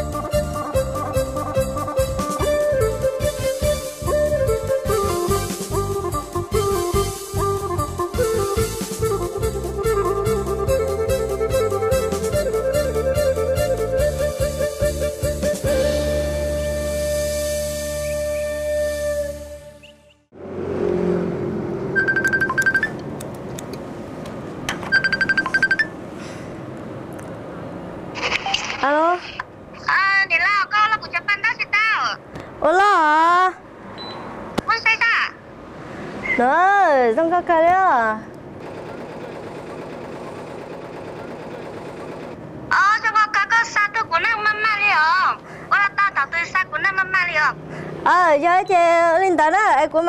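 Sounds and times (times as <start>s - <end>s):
embroidery machine running: 38.6s - 42.4s
rapid clacking of stitching heads: 38.6s - 42.4s.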